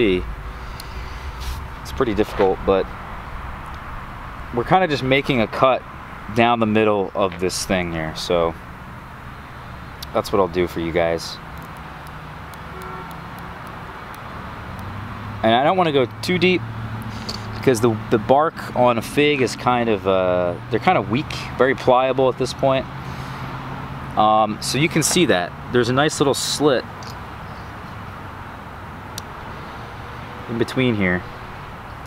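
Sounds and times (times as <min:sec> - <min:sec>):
outdoor background noise: 0:00.0 - 0:32.0
road traffic hum: 0:00.0 - 0:32.0.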